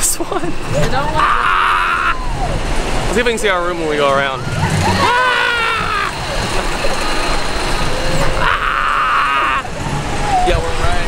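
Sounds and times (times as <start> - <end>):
roller coaster car rumbling on track: 0.0 - 11.0
wind rushing over microphone: 9.5 - 11.0.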